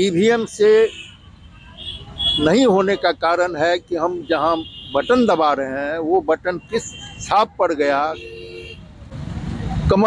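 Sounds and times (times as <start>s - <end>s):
vehicle rumbling: 0.0s - 10.0s.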